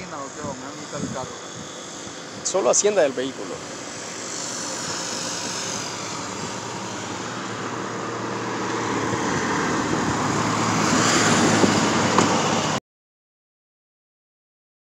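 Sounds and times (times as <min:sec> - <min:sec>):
road traffic rushing: 0:00.0 - 0:12.8
vehicle approaching: 0:00.0 - 0:12.8.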